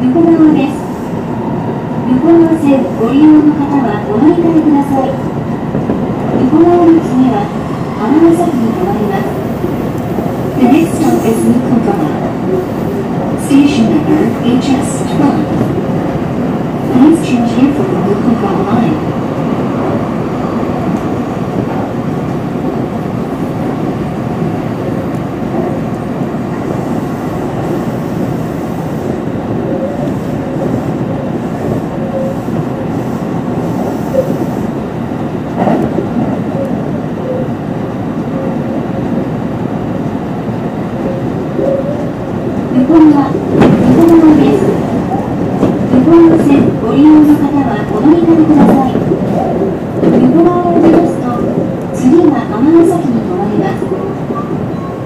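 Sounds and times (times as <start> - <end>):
train wheels rumbling: 0.0 - 55.0.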